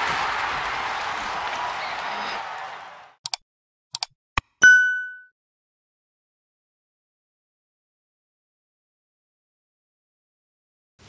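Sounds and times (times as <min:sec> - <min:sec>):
applause-like crowd noise: 0:00.0 - 0:03.2.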